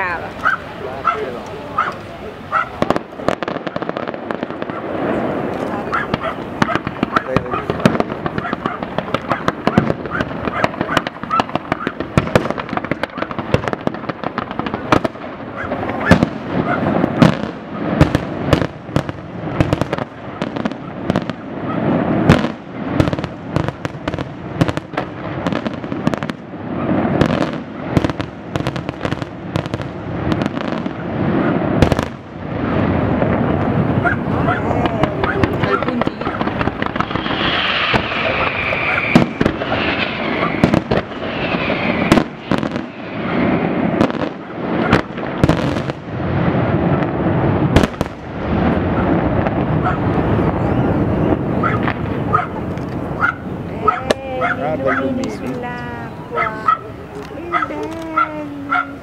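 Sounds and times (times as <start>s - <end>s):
fireworks bursting and crackling: 0.0s - 59.0s.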